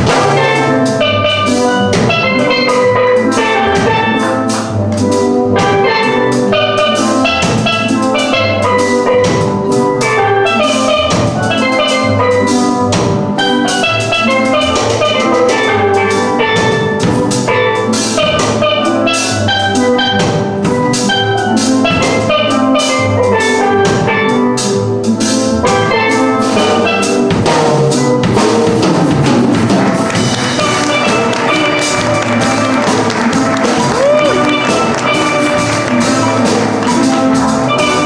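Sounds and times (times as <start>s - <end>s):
drum kit with cymbal hits: 0.0s - 38.0s
steel pan ensemble playing: 0.0s - 38.0s.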